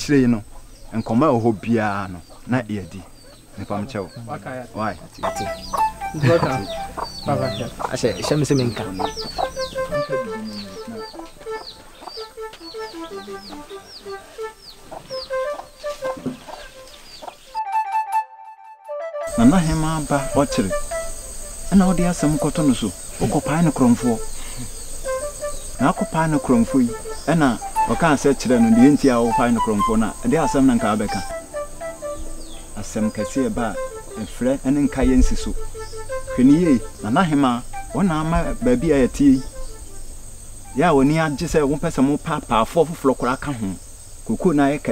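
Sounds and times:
man talking: 0.0 - 11.1, 19.4 - 20.8, 21.7 - 24.3, 25.8 - 31.4, 32.8 - 35.6, 36.4 - 39.5, 40.8 - 44.9
hens clucking: 0.0 - 17.5, 19.3 - 39.9
chicks peeping: 0.0 - 17.6, 19.3 - 42.4
steady high-pitched tone: 5.2 - 12.4
background music: 5.2 - 41.8.

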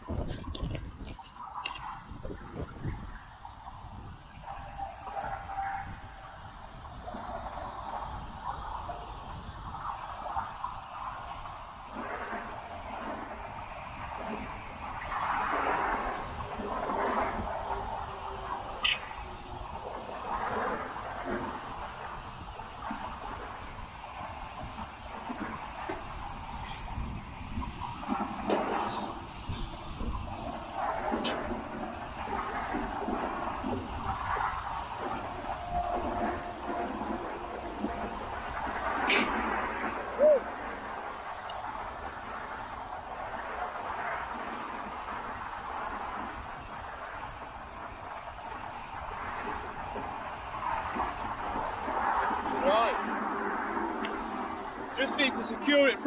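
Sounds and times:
motorway traffic: 0.0 - 56.0
wind rumbling on microphone: 0.0 - 56.0.

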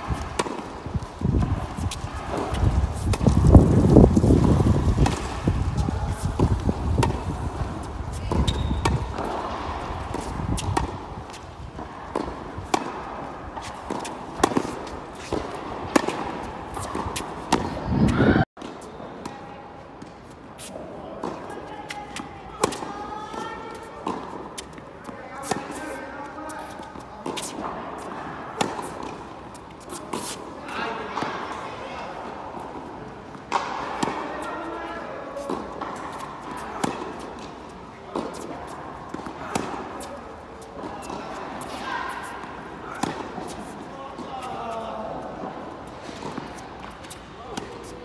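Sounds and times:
wind rumble on microphone: 0.0 - 11.8, 16.6 - 18.4
tennis balls struck and bouncing: 0.0 - 19.4, 20.0 - 26.0, 26.6 - 30.4, 32.3 - 48.0.

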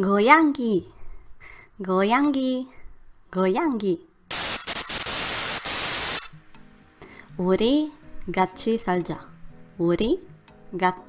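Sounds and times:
faint background music: 0.0 - 4.3, 5.0 - 11.0
tv static hiss: 4.3 - 7.0.

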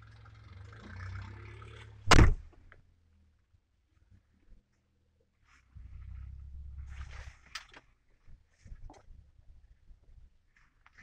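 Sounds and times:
rustling: 4.4 - 11.0
low rumble inside car: 5.6 - 7.6.

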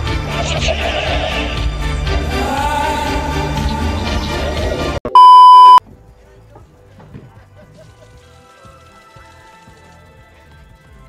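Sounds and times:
music: 0.0 - 5.0, 5.8 - 11.0
electronic beep: 5.1 - 5.8.

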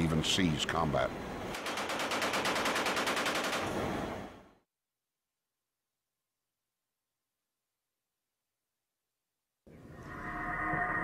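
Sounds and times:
machine gun firing rapid burst: 1.6 - 3.8.

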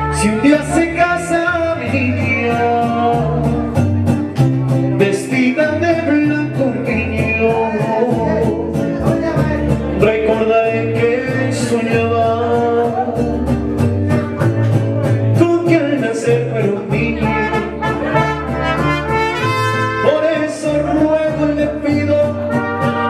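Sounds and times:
trumpets playing melody: 0.0 - 0.8, 17.2 - 20.6, 22.4 - 23.0
bass line: 0.0 - 23.0
strummed guitar rhythm: 0.0 - 23.0.

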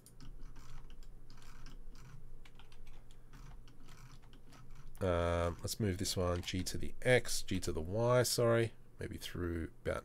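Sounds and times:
keyboard keys clicking: 0.0 - 4.8
low steady hum: 0.0 - 10.0.

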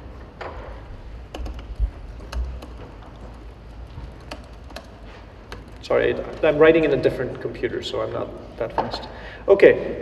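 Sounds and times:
computer keyboard typing: 1.2 - 6.8.

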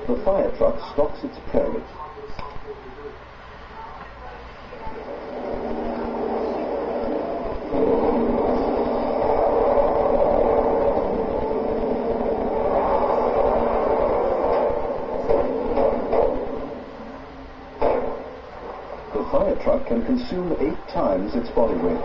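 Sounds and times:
heavy truck engine running: 4.8 - 19.6
sharp impact knocks: 12.7 - 16.8, 17.8 - 18.6.

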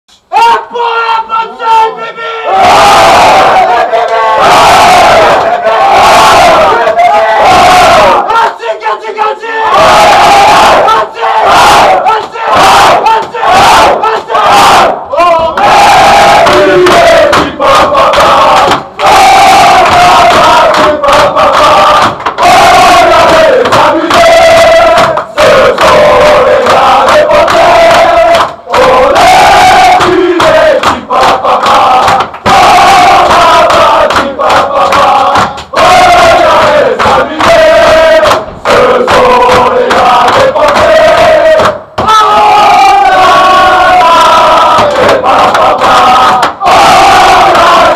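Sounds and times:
men chanting and singing: 0.4 - 47.9
hand claps: 15.5 - 42.1, 44.4 - 47.9.

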